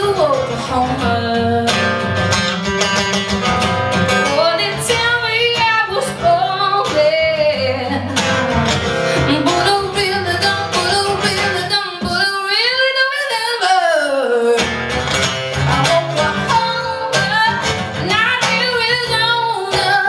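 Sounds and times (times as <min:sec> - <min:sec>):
woman singing: 0:00.0 - 0:02.1, 0:04.2 - 0:14.8, 0:15.6 - 0:20.0
strummed acoustic guitar: 0:00.0 - 0:20.0.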